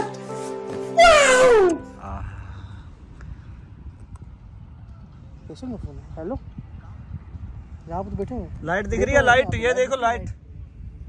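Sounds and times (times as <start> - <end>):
background music: 0.0 - 2.8
man yelling high-pitched: 1.0 - 1.8
low outdoor rumble: 1.5 - 11.0.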